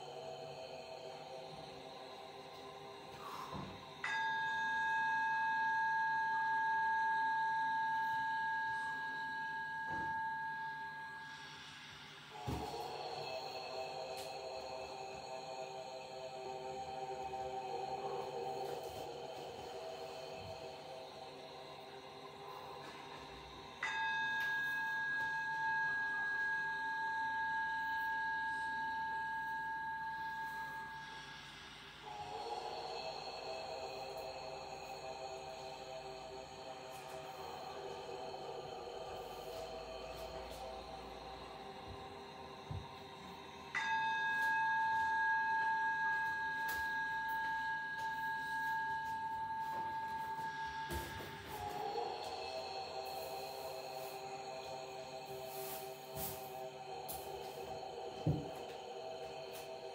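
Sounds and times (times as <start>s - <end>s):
bell-like tone ringing: 0.0s - 59.9s
sustained drone tones: 0.0s - 59.9s.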